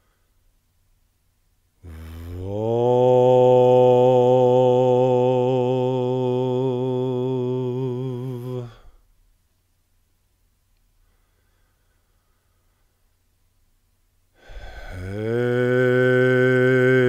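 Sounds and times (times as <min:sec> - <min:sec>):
man chanting a long note: 0:15.0 - 0:17.0.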